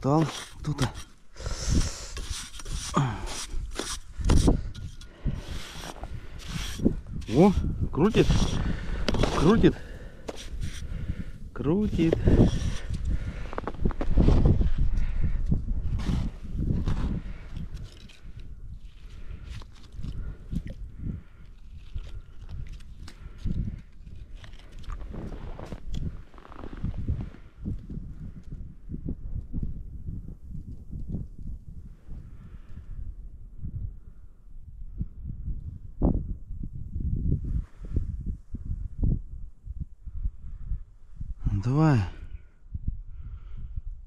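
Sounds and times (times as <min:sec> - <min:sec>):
ice skimmer scraping and knocking: 0:00.0 - 0:01.2, 0:02.1 - 0:07.5, 0:08.1 - 0:09.7
low wind rumble on microphone: 0:00.0 - 0:44.0.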